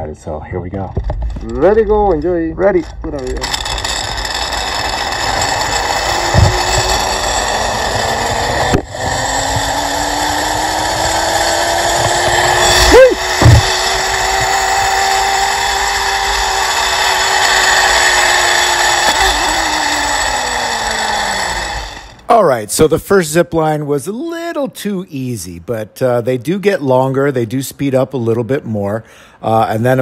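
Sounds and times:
zip-line pulley whirring: 2.8 - 22.2.

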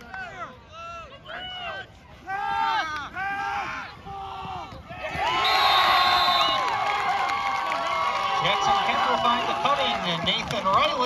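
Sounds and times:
crowd cheering and whooping: 5.0 - 10.2.

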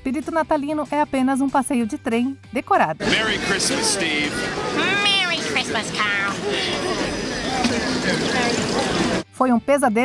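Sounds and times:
other voices: 3.0 - 9.2.

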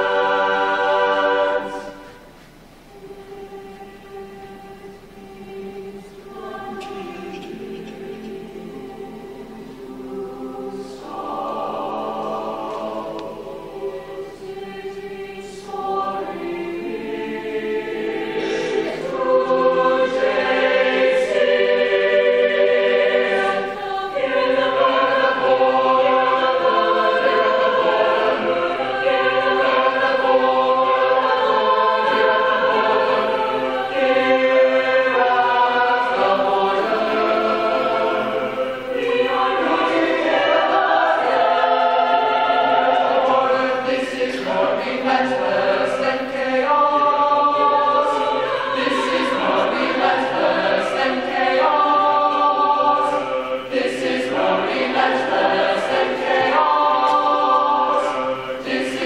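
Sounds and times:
choir singing in parts: 0.0 - 59.0.

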